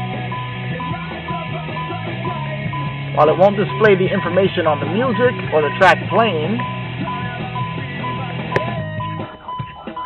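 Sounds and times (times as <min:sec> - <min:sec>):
music from car stereo: 0:00.0 - 0:10.0.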